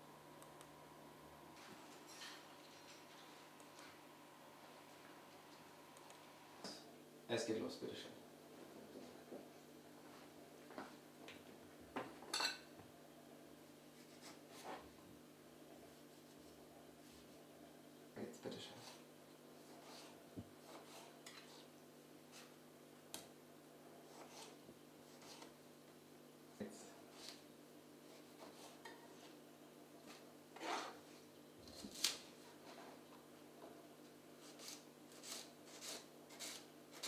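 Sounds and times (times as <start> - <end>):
knife slicing onions on board: 24.1 - 25.6, 34.4 - 37.0.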